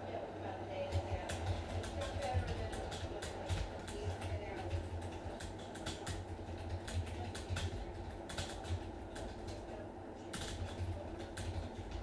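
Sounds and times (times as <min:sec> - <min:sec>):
keyboard typing clicks: 0:00.9 - 0:09.6.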